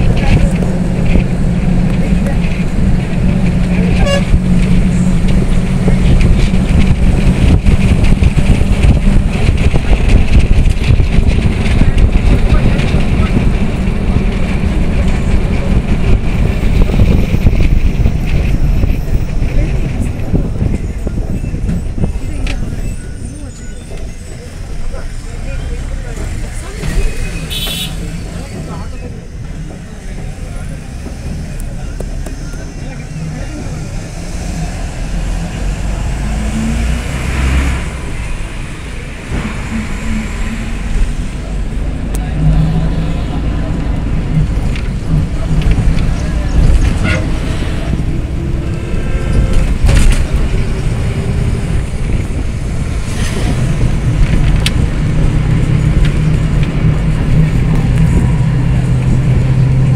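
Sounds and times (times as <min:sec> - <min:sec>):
wind on microphone: 0:00.0 - 0:23.4, 0:34.0 - 0:59.9
vehicle engine and road rumble: 0:00.0 - 0:59.9.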